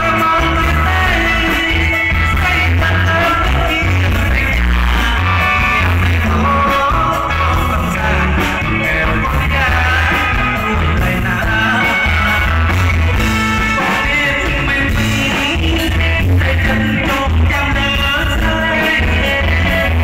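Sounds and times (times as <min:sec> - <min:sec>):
live band playing: 0:00.0 - 0:20.0
man singing into microphone: 0:00.0 - 0:20.0.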